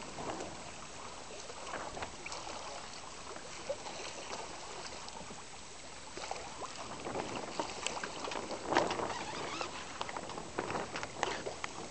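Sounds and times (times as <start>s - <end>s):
wind on microphone: 0.0s - 5.5s, 6.2s - 11.9s
waves lapping against boat hull: 0.0s - 11.9s.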